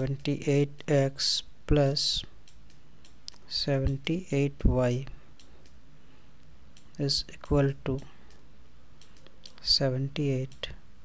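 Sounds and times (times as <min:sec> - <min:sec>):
low background hiss: 0:00.0 - 0:11.0
faint clicks: 0:02.4 - 0:04.0, 0:05.3 - 0:05.8, 0:09.0 - 0:09.7.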